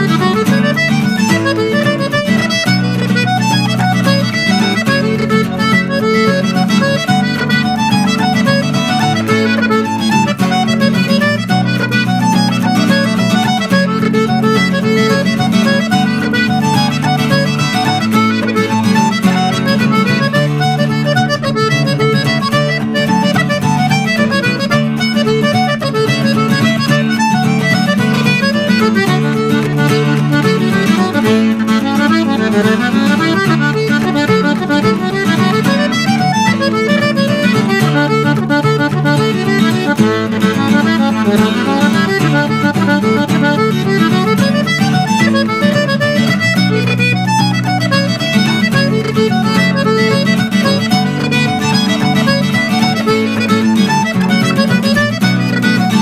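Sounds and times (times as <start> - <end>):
accordion melody: 0.0 - 56.0
strummed acoustic guitar: 0.0 - 56.0.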